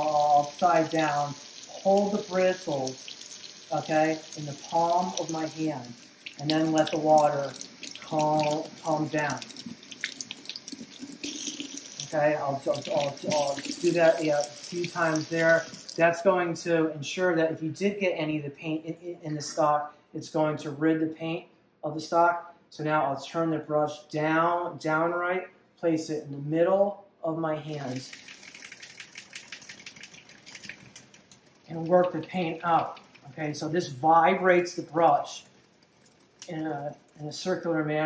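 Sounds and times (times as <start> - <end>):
faucet water splashing into sink: 0.0 - 16.0, 27.8 - 37.3.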